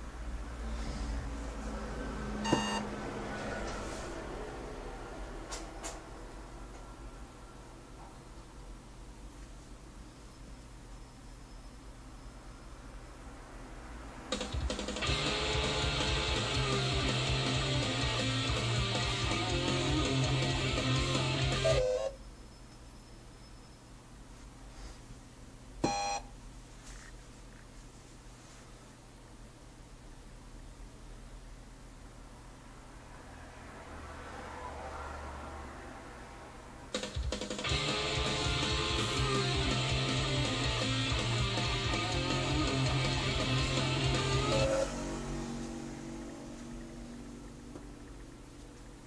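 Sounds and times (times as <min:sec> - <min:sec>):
short electronic beep: 0:02.4 - 0:02.9, 0:25.8 - 0:26.2.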